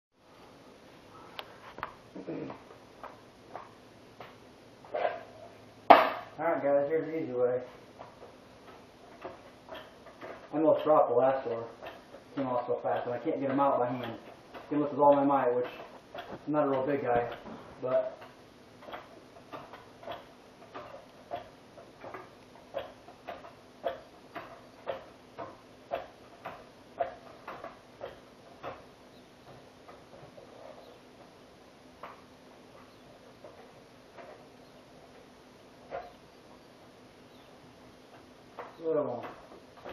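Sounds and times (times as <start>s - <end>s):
floor jack metal clank: 5.9s - 6.4s
tools knocking and clicking: 8.0s - 11.0s, 11.7s - 17.6s, 18.2s - 31.3s, 32.0s - 36.6s, 38.1s - 39.9s.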